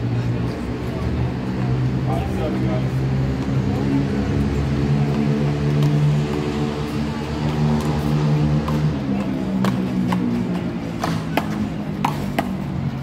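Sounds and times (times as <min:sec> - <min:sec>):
low motor drone: 0:00.0 - 0:13.0.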